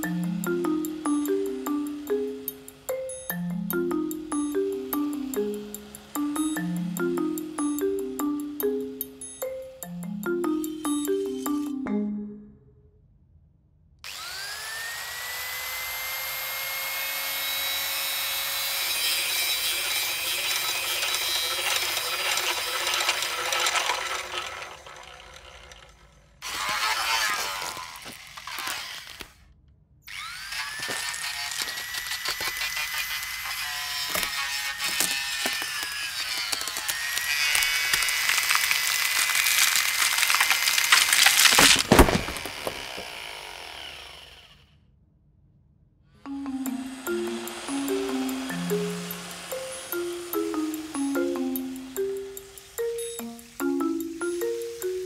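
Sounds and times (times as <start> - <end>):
power tool motor whine: 5.1 - 7.0, 14.1 - 29.4, 30.1 - 44.7, 46.3 - 55.0
sharp crash: 41.0 - 42.8.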